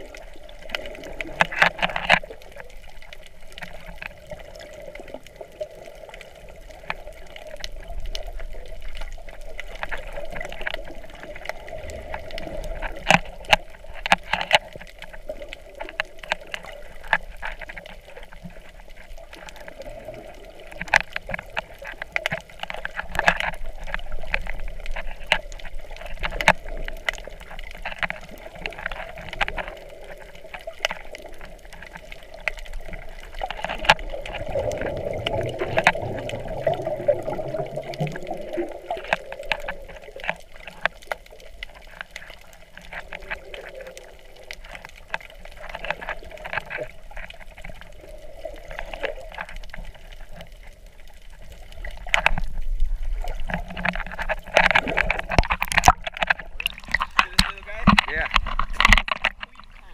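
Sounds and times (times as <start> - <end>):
sharp underwater clicks and crackles: 0.0 - 59.9
underwater water noise: 0.0 - 59.9
water rushing: 0.0 - 59.9.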